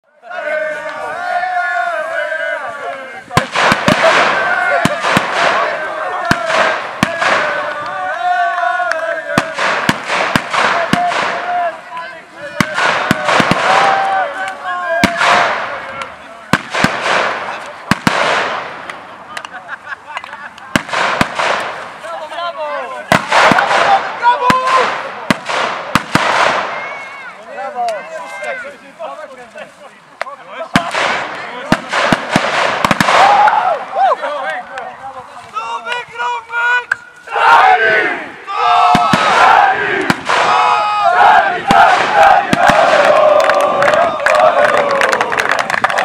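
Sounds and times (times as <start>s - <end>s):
crowd shouting and cheering: 0.0s - 16.5s, 21.6s - 29.0s, 30.2s - 46.0s
firecrackers banging: 3.3s - 12.0s, 12.6s - 22.3s, 23.0s - 27.0s, 30.6s - 33.6s, 38.8s - 40.8s, 41.6s - 46.0s.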